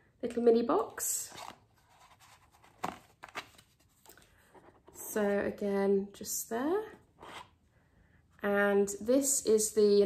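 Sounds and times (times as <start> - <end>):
cardboard box rustling: 1.3 - 4.8.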